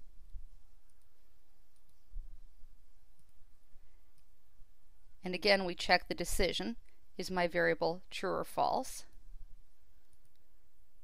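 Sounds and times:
computer mouse clicks: 0.7 - 2.1, 3.1 - 3.4, 10.0 - 10.5.

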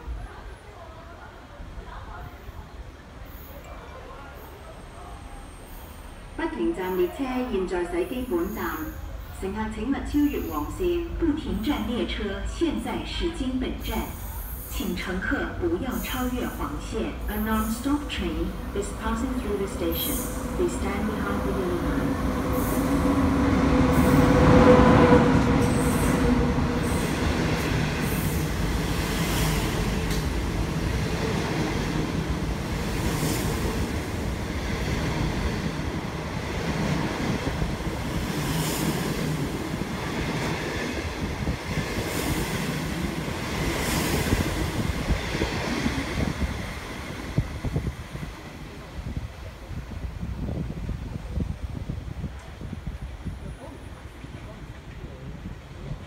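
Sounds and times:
rumble of train wheels: 0.0 - 56.0
electric locomotive passing: 3.1 - 51.5.

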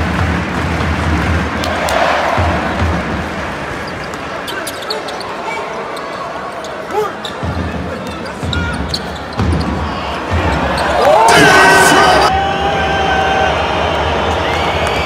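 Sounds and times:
crowd chatter: 1.5 - 15.0.

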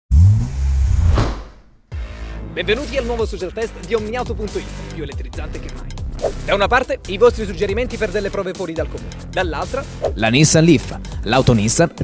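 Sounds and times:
whoosh: 0.1 - 1.8.

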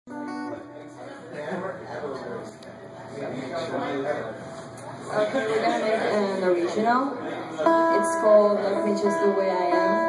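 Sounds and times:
murmur of voices: 0.1 - 10.0.

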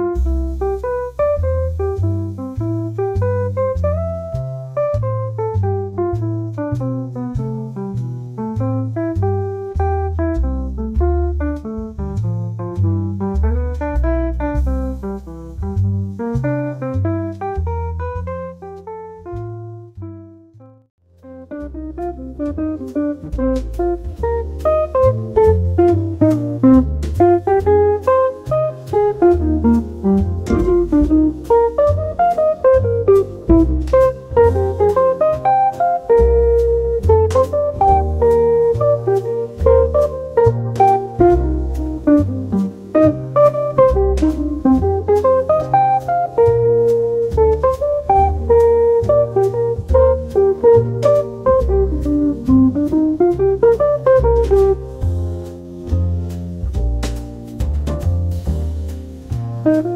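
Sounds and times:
drum kit: 0.0 - 19.7, 21.2 - 59.9
bass line: 0.0 - 59.9
plucked guitar melody: 0.0 - 59.9.

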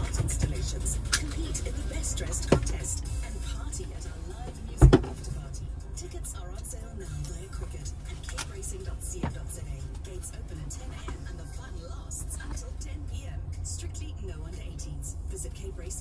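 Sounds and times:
low rumble inside car: 0.0 - 16.0
radio playing music and voices: 0.0 - 16.0.

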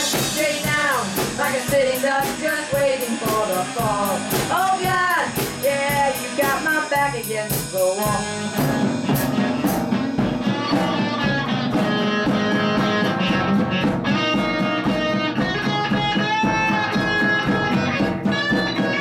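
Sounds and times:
lead guitar with bent notes: 0.0 - 19.0
rock band playing: 0.0 - 19.0.

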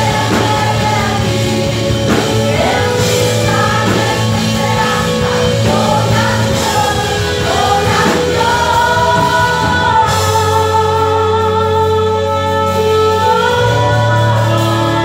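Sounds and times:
bass: 0.0 - 15.0
drums: 0.0 - 15.0
electric guitars: 0.0 - 15.0
voices singing together: 0.0 - 15.0.

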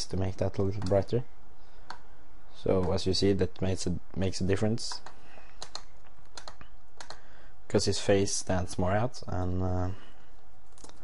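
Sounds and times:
faint low hum: 0.0 - 11.0
computer clicks: 0.8 - 1.0, 4.9 - 7.2.

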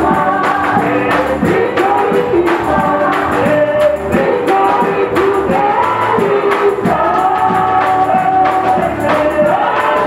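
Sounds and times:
congregation singing gospel song: 0.0 - 10.0
hand-clapping: 0.4 - 5.4.

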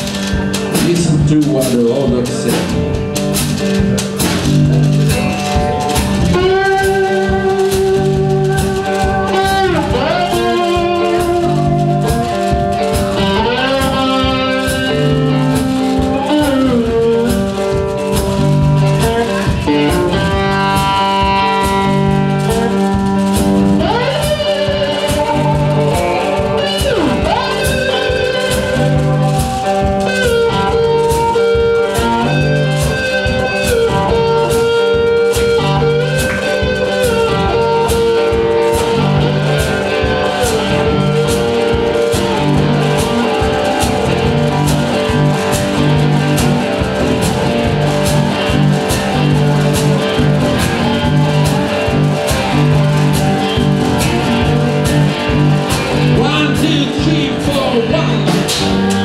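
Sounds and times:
amplified guitars playing: 0.0 - 59.0
steady beat: 0.0 - 59.0.

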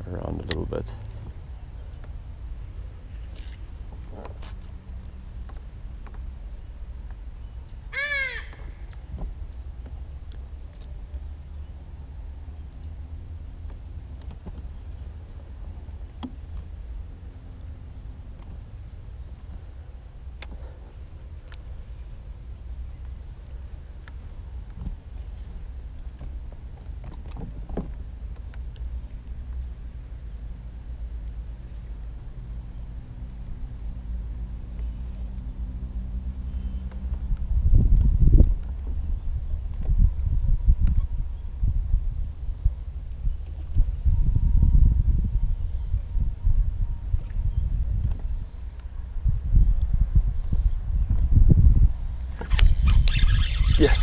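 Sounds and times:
steady low rumble: 0.0 - 7.9
short bird call: 8.0 - 8.8, 52.5 - 54.0.

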